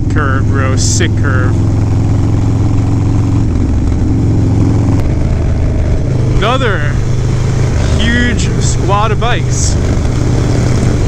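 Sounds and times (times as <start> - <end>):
motorcycle engine riding: 0.0 - 11.0.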